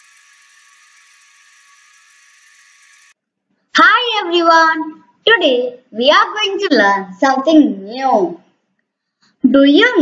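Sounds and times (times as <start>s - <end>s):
child speaking: 3.8s - 8.5s, 9.4s - 10.0s.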